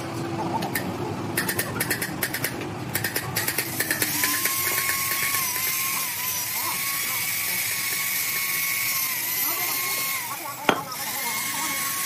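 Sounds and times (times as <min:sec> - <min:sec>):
electric drill whining: 0:04.0 - 0:12.0.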